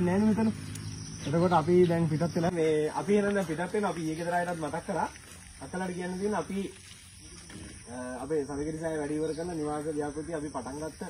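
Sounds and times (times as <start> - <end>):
man speaking: 0.0 - 0.6, 1.2 - 11.0.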